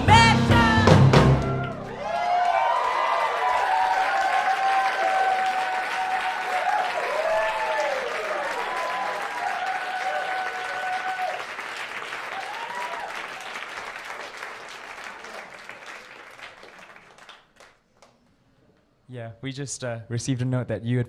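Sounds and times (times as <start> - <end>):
audience applauding and cheering: 0.0 - 18.2
voices whooping: 1.4 - 11.4, 12.3 - 13.2.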